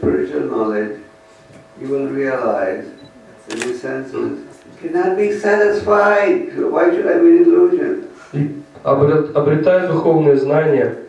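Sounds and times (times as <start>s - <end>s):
man speaking through a microphone: 0.0s - 1.1s, 1.8s - 11.0s.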